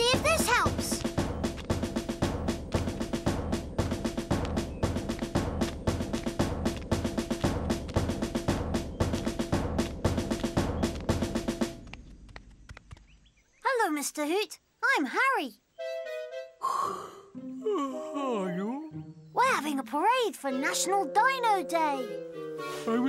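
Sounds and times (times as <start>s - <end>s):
marching drums: 0.0s - 11.8s.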